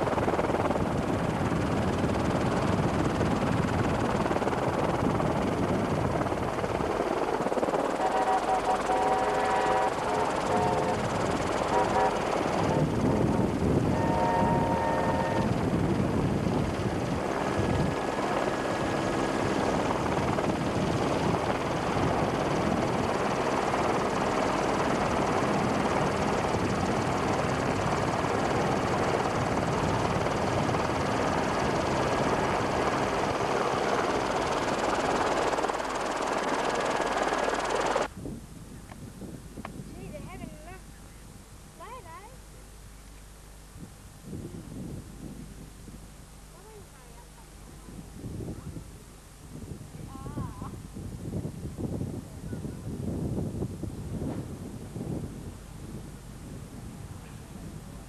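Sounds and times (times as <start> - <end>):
helicopter rotor and engine: 0.0 - 38.1, 44.2 - 58.0
steam locomotive whistle: 8.0 - 11.0, 11.7 - 12.8, 13.9 - 15.5.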